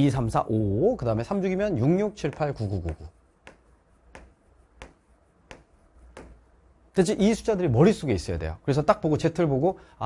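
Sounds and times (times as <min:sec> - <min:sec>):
chalk tapping on board: 0:01.4 - 0:06.6.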